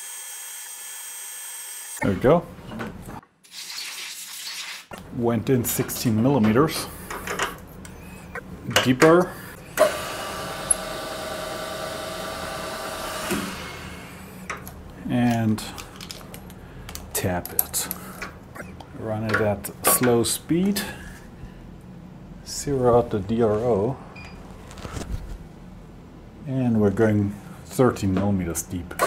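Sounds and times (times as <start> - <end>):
milling machine spindle whine: 9.8 - 14.4.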